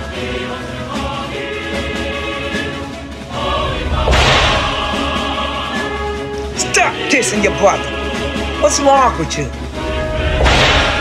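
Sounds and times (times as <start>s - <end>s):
music: 0.0s - 11.0s
whip-like swish: 4.1s - 4.9s, 10.4s - 11.0s.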